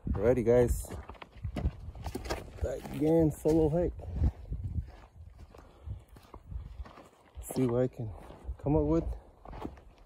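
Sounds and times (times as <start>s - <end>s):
footsteps on a trail: 0.0s - 10.0s.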